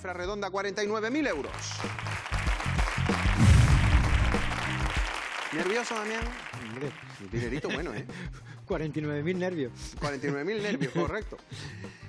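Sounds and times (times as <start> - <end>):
applause and clapping: 1.2 - 8.0
game show music sting: 1.9 - 7.2.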